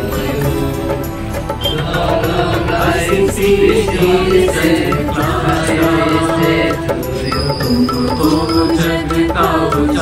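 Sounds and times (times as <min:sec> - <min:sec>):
devotional hymn with instruments: 0:00.0 - 0:10.0.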